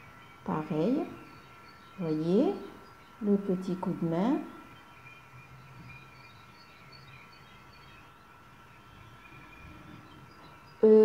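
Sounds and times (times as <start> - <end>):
faint high-pitched hum: 0.0 - 11.0.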